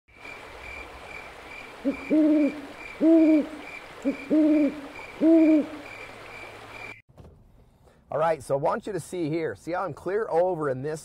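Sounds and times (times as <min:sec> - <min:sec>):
crickets chirping: 0:00.1 - 0:07.0
owl-like hoot: 0:01.9 - 0:05.8.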